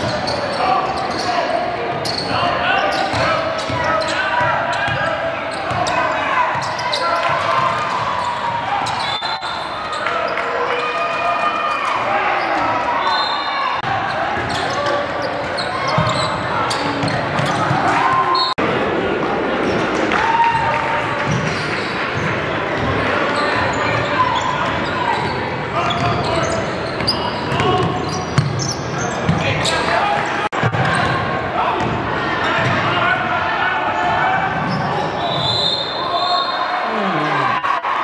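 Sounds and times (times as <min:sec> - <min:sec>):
sneaker squeaks: 0:00.0 - 0:10.9, 0:12.2 - 0:18.6, 0:21.3 - 0:29.9, 0:34.6 - 0:37.4
voices and shouts: 0:29.4 - 0:38.0.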